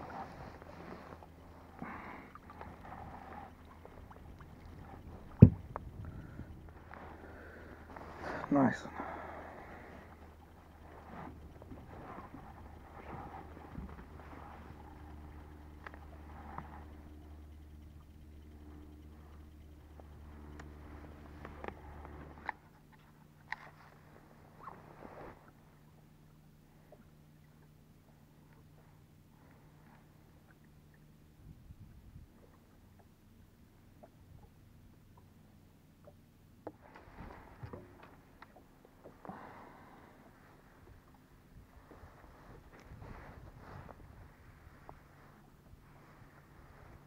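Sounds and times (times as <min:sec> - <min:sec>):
soft rustle: 0:00.0 - 0:17.6, 0:23.6 - 0:26.0, 0:36.8 - 0:47.0
low hum: 0:00.0 - 0:47.0
fishing rod and reel handled: 0:10.0 - 0:24.0.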